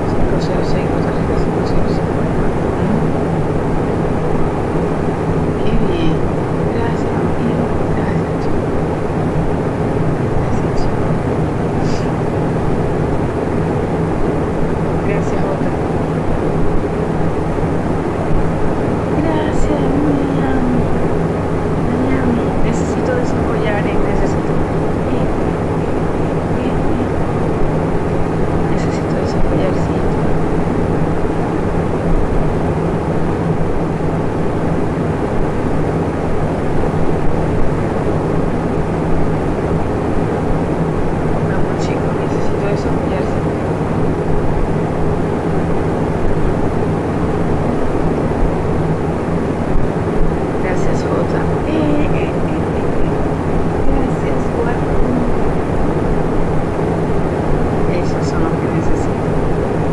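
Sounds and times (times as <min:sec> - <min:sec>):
faint voices: 0:00.0 - 0:03.3, 0:05.6 - 0:08.7, 0:09.9 - 0:12.5, 0:14.9 - 0:16.0, 0:19.1 - 0:21.1, 0:21.8 - 0:27.3, 0:28.6 - 0:31.6, 0:41.4 - 0:44.0, 0:50.6 - 0:55.7, 0:57.8 - 0:59.3
loud background hum: 0:00.0 - 0:59.9.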